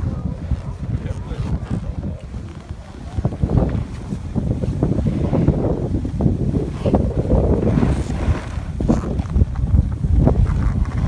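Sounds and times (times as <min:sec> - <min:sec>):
snowboard scraping over snow: 0:00.0 - 0:11.0
wind buffeting microphone: 0:00.0 - 0:11.0.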